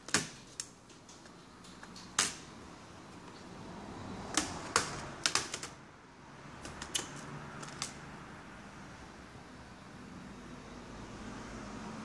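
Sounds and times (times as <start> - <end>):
plastic clips snapping: 0.0 - 2.5.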